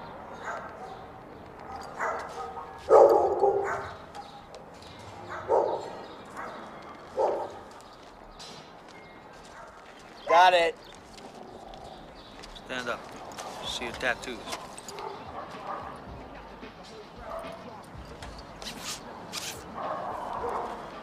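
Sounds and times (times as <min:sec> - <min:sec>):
dog barking: 0:00.3 - 0:04.5, 0:05.1 - 0:07.8, 0:09.5 - 0:10.4, 0:14.5 - 0:16.1, 0:17.2 - 0:17.7, 0:19.6 - 0:21.0.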